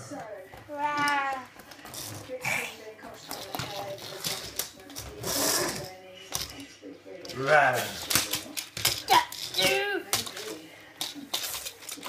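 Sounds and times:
plastic toys clattering on floor: 0.1s - 12.0s.

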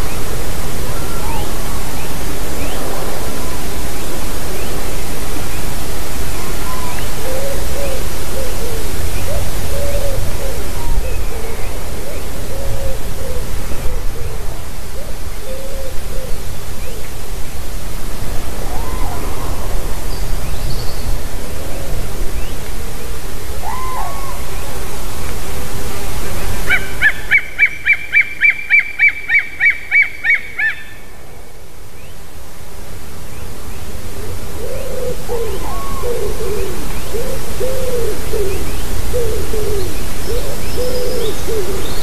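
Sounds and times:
bird calling: 0.9s - 3.0s, 6.4s - 17.2s, 26.2s - 31.1s, 34.2s - 42.0s.

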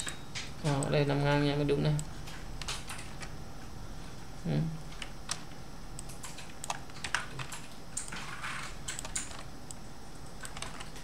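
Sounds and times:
computer keyboard clicks: 6.0s - 8.2s, 8.8s - 11.0s.

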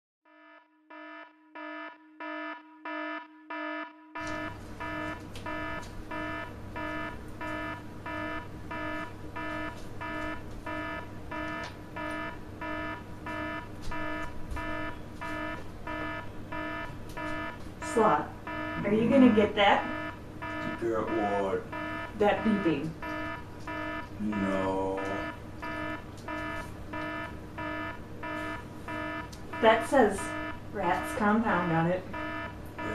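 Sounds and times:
electronic alarm beeping: 0.3s - 32.9s
low steady hum: 4.2s - 32.9s.

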